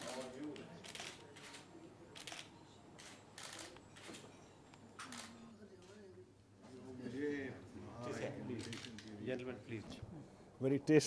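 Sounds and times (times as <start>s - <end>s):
camera shutters clicking: 0.0s - 4.2s, 8.6s - 9.2s
faint murmur of voices: 0.0s - 11.0s.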